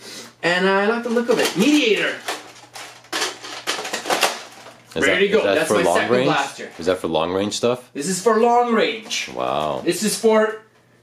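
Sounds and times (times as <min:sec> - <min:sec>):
plastic parts clacking: 0:01.1 - 0:04.8.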